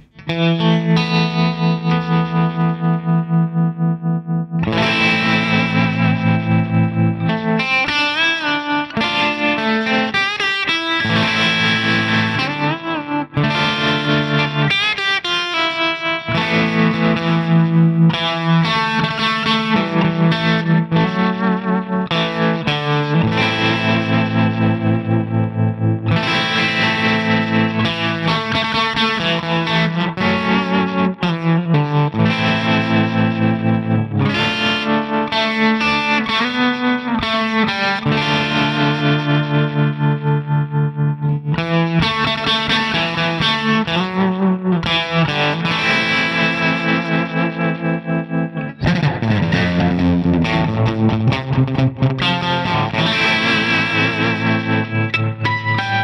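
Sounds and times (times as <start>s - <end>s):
electric guitar with tremolo: 0.0s - 56.0s.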